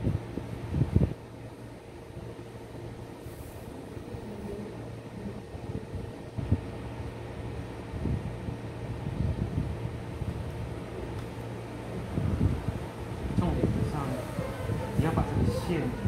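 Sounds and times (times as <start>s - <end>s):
mechanical fan humming: 0.0s - 16.0s.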